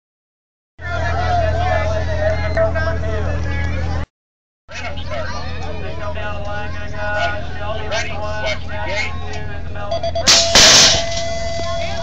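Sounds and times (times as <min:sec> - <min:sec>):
people's voices and chatter: 0:00.8 - 0:04.1, 0:04.7 - 0:12.0.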